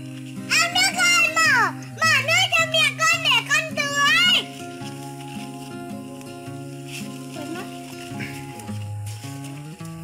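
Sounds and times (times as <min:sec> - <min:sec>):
background music: 0:00.0 - 0:10.0
girl's high-pitched voice: 0:00.5 - 0:04.5.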